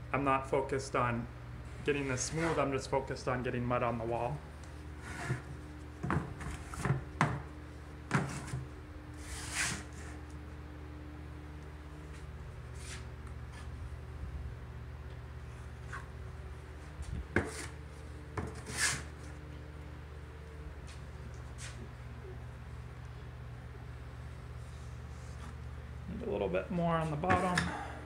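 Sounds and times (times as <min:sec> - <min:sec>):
steady low hum: 0:00.0 - 0:28.0
drywall knife scraping metal pan: 0:18.5 - 0:19.1.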